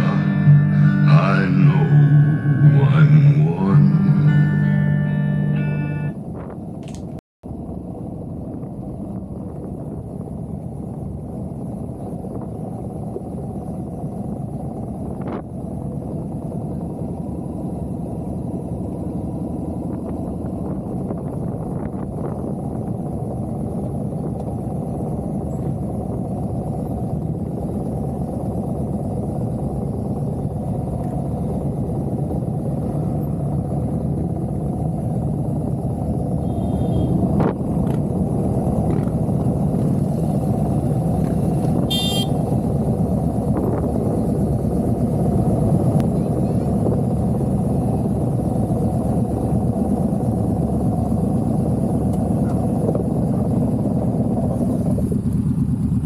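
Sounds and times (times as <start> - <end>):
motorcycle engine rumbling: 0.0 - 56.0.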